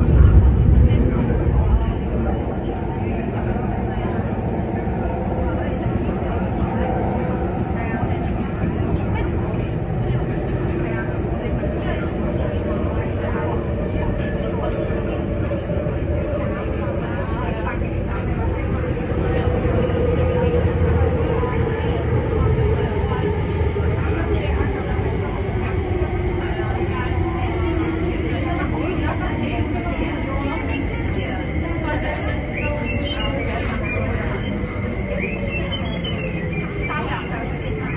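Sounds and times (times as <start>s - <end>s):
electric train rumbling: 0.0s - 37.9s.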